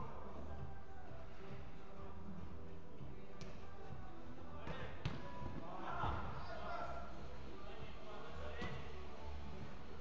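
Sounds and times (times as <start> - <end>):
football kicked thud: 4.6 - 5.3.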